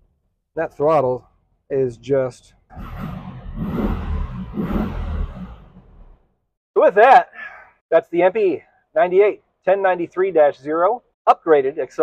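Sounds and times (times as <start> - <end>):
car engine while driving: 2.7 - 6.2.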